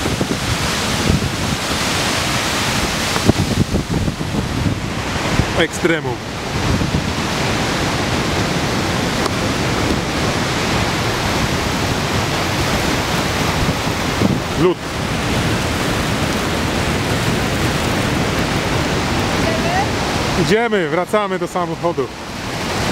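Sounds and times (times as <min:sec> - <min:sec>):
wind noise on microphone: 0:00.0 - 0:20.5, 0:22.1 - 0:22.9
waterfall roaring: 0:00.0 - 0:22.9.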